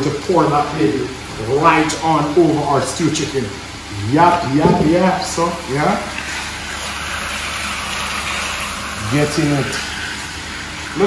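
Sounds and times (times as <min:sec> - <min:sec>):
chicken sizzling in a skillet: 0:05.5 - 0:11.0.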